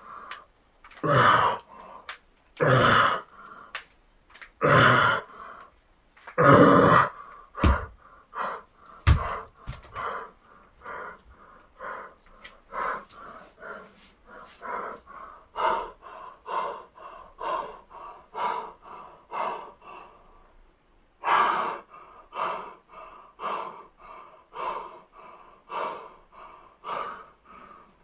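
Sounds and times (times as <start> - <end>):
man breathing hard: 0.0 - 3.9, 4.6 - 5.8, 6.4 - 28.0.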